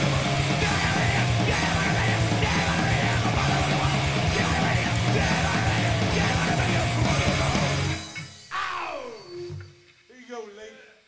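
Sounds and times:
punk metal band playing: 0.0 - 9.3.

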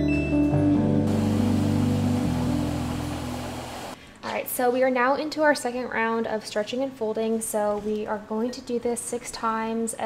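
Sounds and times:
background music chords: 0.0 - 4.0
washing machine hissing: 1.1 - 4.0.

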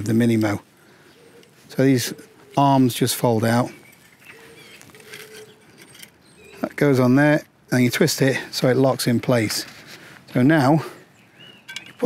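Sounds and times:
low steady bird call: 0.0 - 7.1, 10.0 - 12.0
distant birds calling: 0.0 - 12.0.

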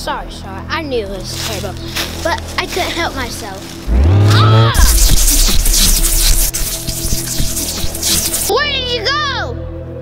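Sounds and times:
magic spell hiss: 4.8 - 8.5.

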